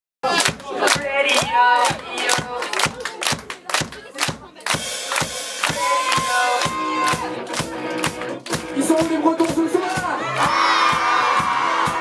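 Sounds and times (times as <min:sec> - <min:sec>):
crowd clapping in time: 0:00.2 - 0:12.0
band playing: 0:00.3 - 0:12.0.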